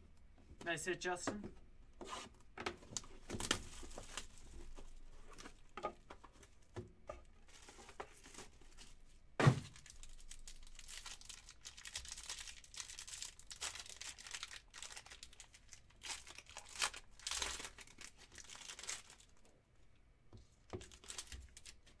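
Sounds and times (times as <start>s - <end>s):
foil wrapper crinkling and tearing: 2.9s - 5.7s, 9.7s - 19.5s, 20.7s - 22.0s.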